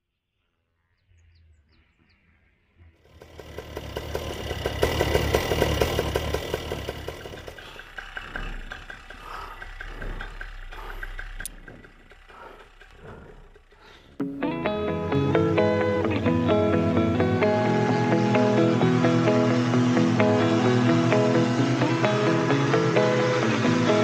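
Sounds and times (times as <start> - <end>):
two-stroke engine running: 3.1 - 24.0.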